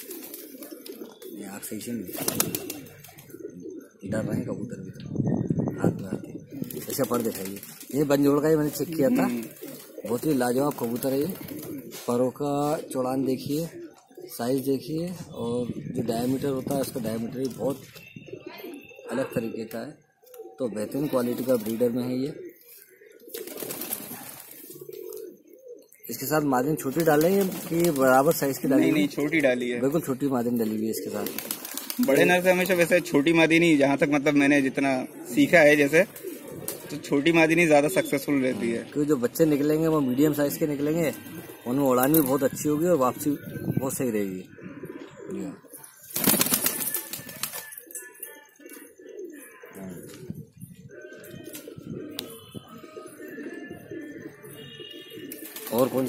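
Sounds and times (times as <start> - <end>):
pigeons cooing: 0.0 - 56.0
rustle of feathers: 2.1 - 3.4, 22.6 - 25.3, 31.2 - 32.4, 46.1 - 47.8.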